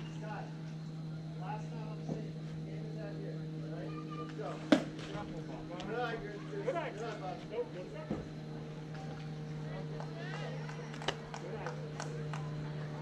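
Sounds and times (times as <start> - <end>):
faint voices: 0.0 - 13.0
steady low hum: 0.0 - 13.0.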